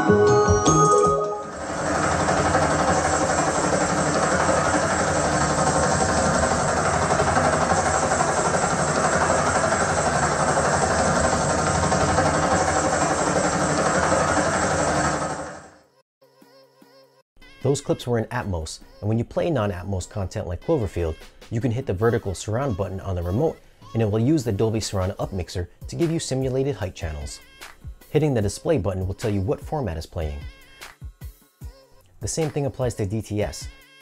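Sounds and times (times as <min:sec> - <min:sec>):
helicopter rotor and engine drone: 0:01.4 - 0:15.8.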